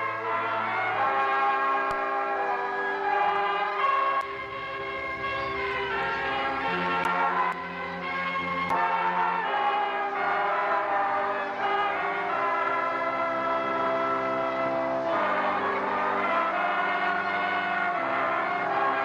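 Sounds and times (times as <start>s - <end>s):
keyboard organ chords: 0.0s - 19.0s.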